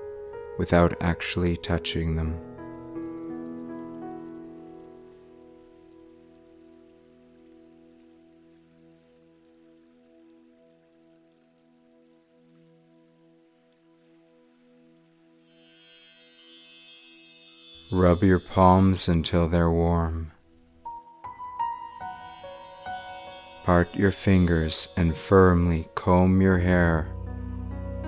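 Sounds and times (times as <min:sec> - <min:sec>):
high chime-like tinkling: 0:15.4 - 0:19.6, 0:21.8 - 0:27.0
sustained chord: 0:21.0 - 0:28.0.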